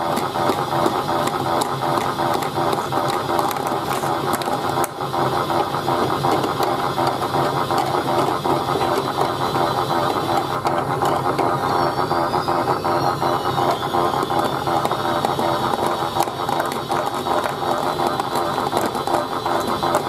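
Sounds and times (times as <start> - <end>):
toy washing machine rattling: 0.0 - 20.0.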